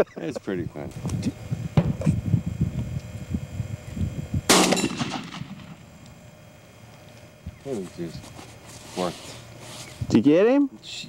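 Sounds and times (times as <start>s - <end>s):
low rumbling noise: 0.6s - 10.1s
shotgun shot: 4.5s - 5.8s.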